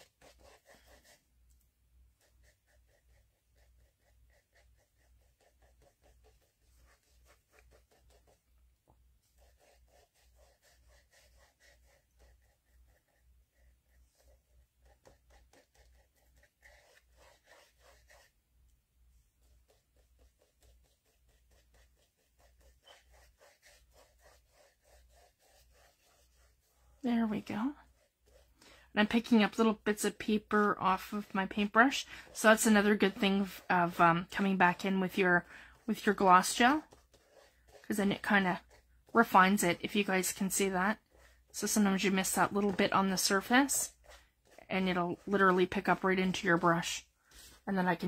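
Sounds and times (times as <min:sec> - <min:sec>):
paintbrush strokes on paper: 0:00.0 - 0:48.0.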